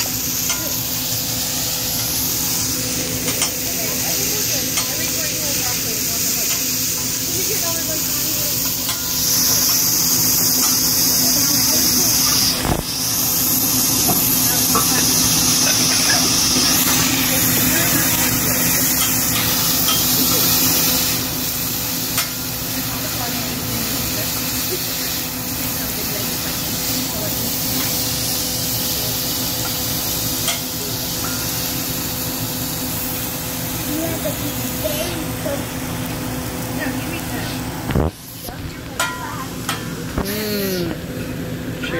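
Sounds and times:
meat sizzling on a griddle: 0:00.0 - 0:41.8.

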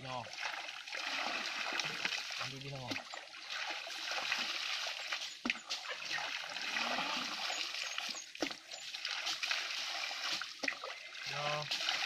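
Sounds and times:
water splashing and trickling: 0:00.0 - 0:12.0.

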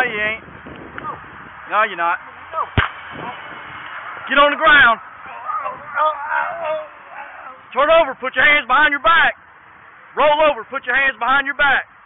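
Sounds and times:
taser firing pop: 0:02.8 - 0:03.3.

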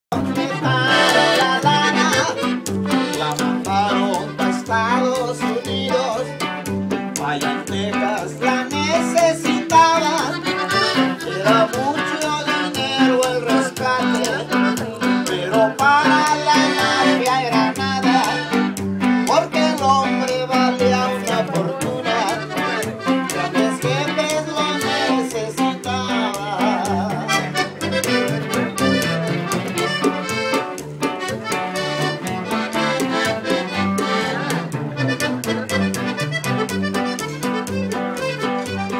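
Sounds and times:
accordion melody: 0:00.0 - 0:38.9
guitar: 0:00.0 - 0:38.9
upright bass beat: 0:00.1 - 0:38.9.

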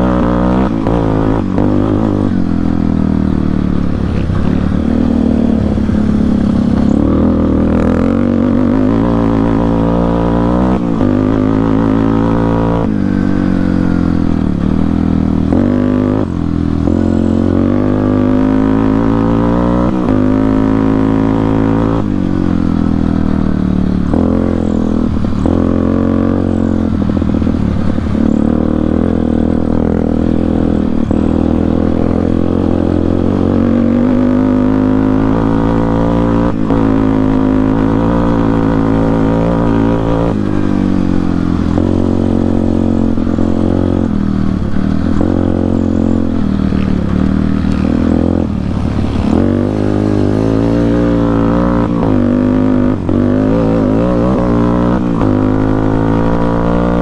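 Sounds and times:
quad engine accelerating: 0:00.0 - 0:57.0.

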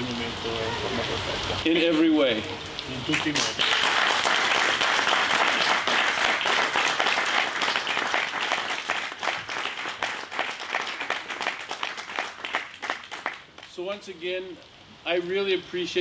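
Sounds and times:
audience applauding: 0:03.1 - 0:13.7.

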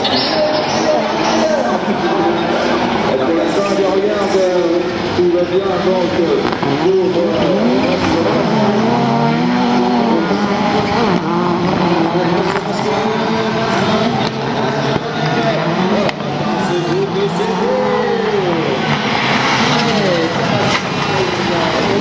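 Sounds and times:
race car engines revving: 0:00.0 - 0:22.0.

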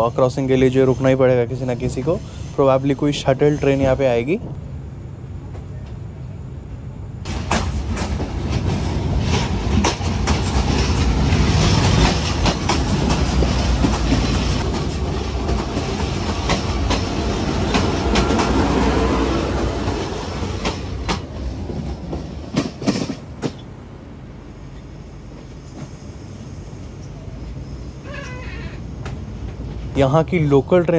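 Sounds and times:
train passing close by: 0:00.0 - 0:30.9
wheels clacking over rail joints: 0:07.3 - 0:23.7.

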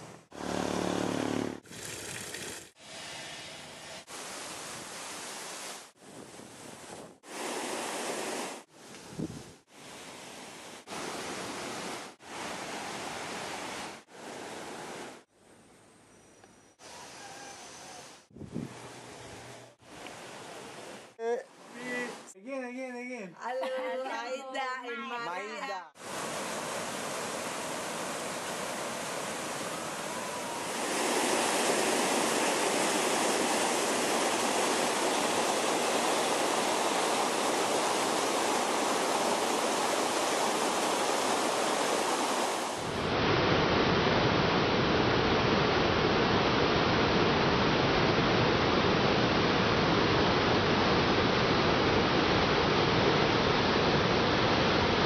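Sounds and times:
stream pouring over rocks: 0:26.0 - 0:42.9
waterfall rushing: 0:26.0 - 0:55.0.

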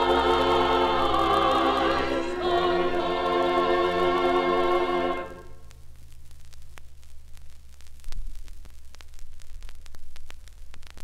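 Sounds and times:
record hiss: 0:00.0 - 0:11.0
steady low hum: 0:00.0 - 0:11.0
vinyl crackles and pops: 0:00.0 - 0:11.0.

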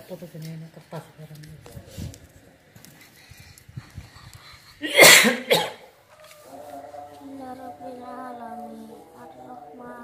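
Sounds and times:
person coughing loudly: 0:04.8 - 0:05.9.

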